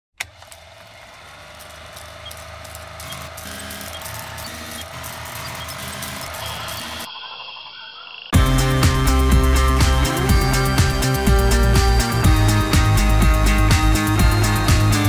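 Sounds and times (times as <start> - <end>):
humming drone with low line: 0.4 - 7.2, 7.8 - 15.0
scattered ticks: 1.6 - 8.3.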